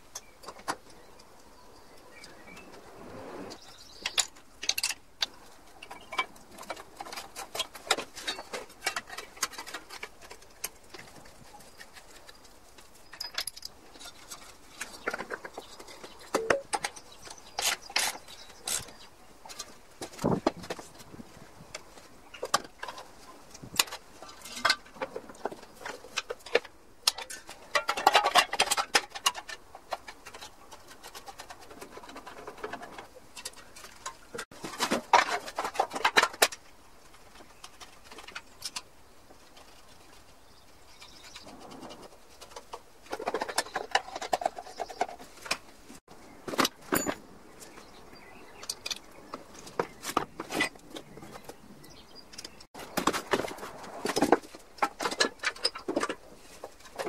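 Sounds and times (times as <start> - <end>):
screwdriver and metal parts clinking: 13.0 - 19.0, 46.6 - 47.2.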